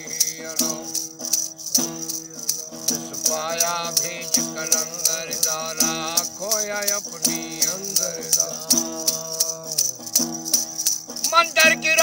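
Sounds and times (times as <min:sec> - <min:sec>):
rattle beating: 0:00.0 - 0:12.0
lute strummed drone: 0:11.1 - 0:12.0.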